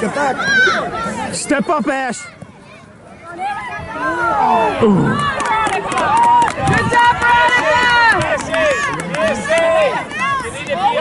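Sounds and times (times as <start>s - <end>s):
spectators shouting and cheering: 0.0s - 11.0s.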